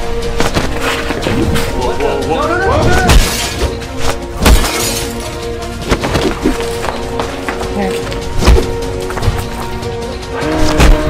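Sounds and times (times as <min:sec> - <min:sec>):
droning film score: 0:00.0 - 0:11.0.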